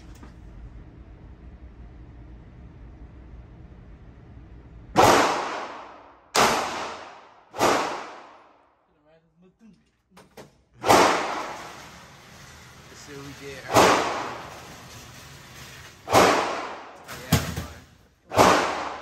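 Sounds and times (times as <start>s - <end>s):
pistol shots echoing indoors: 4.9s - 8.8s, 10.8s - 12.0s, 13.7s - 14.8s, 16.0s - 19.0s.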